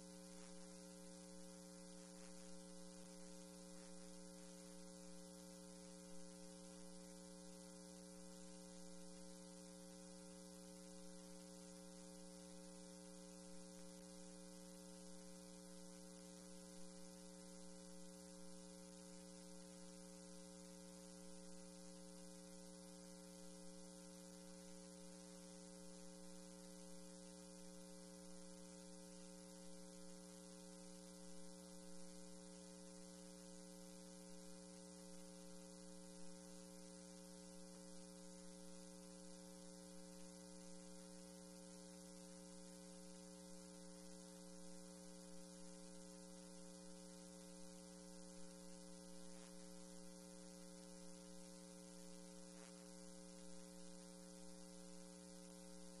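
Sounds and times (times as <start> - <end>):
electrical mains hum: 0.0 - 56.0.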